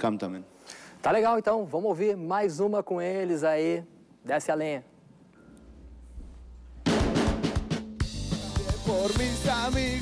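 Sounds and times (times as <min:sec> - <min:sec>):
drum kit fill: 0:06.7 - 0:10.0
singer singing: 0:08.3 - 0:10.0.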